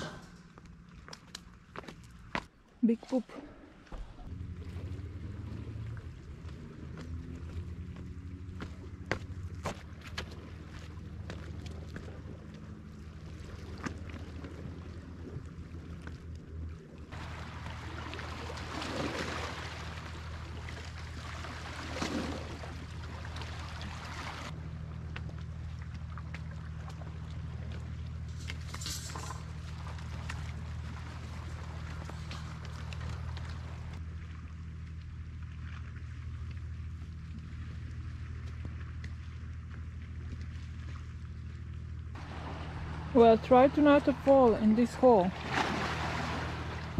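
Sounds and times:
footsteps on stony ground: 0:00.1 - 0:02.6
low steady drone: 0:03.2 - 0:23.8, 0:24.4 - 0:46.9.

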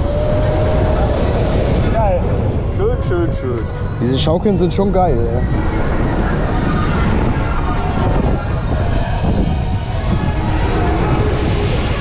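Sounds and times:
deep rumble: 0:00.0 - 0:12.0
wind rushing over microphone: 0:00.0 - 0:12.0.

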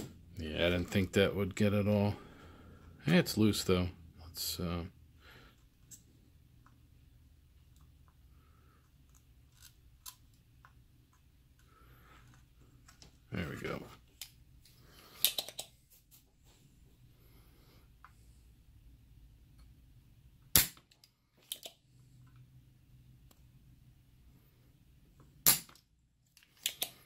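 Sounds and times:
desoldering pump snap: 0:25.4 - 0:25.8.

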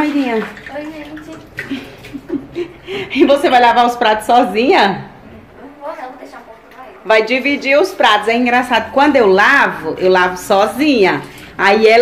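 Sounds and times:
dishes being washed: 0:00.0 - 0:12.0.

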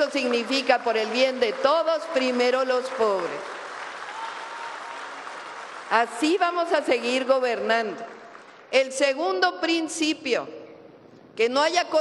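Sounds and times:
crowd applauding: 0:00.0 - 0:06.5.

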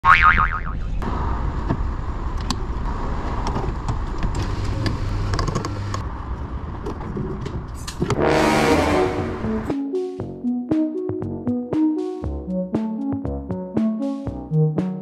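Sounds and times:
vehicle rumble: 0:00.6 - 0:09.7
brief loud vehicle sound: 0:08.0 - 0:09.6
electronic music with beat: 0:09.2 - 0:15.0.

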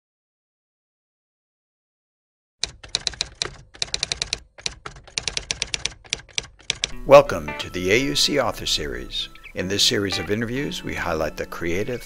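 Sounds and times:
typewriter keys clacking: 0:02.6 - 0:07.0.

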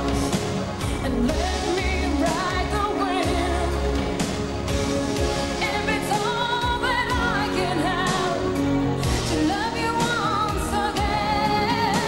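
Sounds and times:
woman singing with vibrato: 0:00.0 - 0:04.2, 0:05.6 - 0:08.6, 0:09.2 - 0:12.0
backing band with steady bass: 0:00.0 - 0:12.0.

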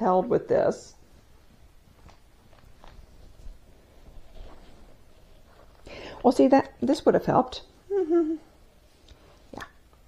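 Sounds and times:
paper or fabric rustle: 0:01.1 - 0:05.8
woman laughing: 0:07.9 - 0:08.5.

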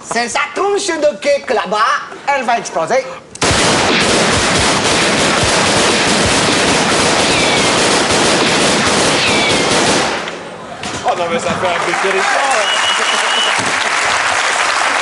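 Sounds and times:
rapid handgun fire: 0:03.4 - 0:10.4.

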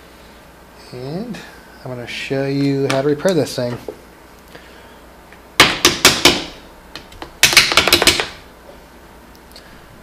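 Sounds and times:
hard objects clicking and knocking: 0:05.6 - 0:08.4.

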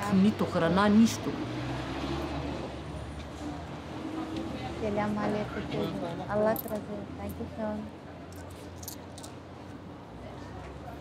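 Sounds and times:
busy pavement noise: 0:00.0 - 0:11.0
low drone of road traffic: 0:00.0 - 0:11.0.

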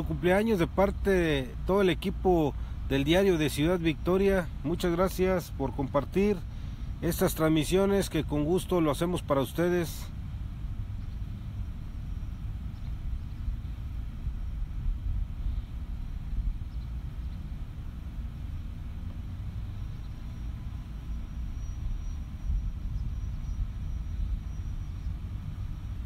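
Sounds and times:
faint high whine: 0:00.0 - 0:26.0
low uneven outdoor rumble: 0:00.0 - 0:26.0.

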